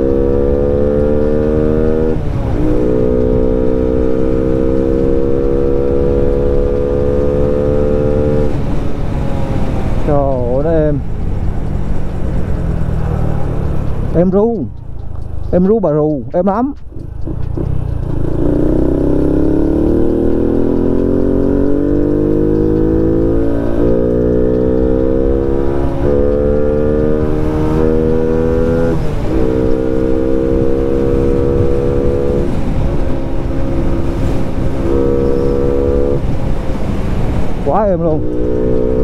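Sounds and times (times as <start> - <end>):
motorcycle engine accelerating: 0.0 - 15.8, 16.8 - 39.0
wind rumbling on microphone: 16.8 - 39.0.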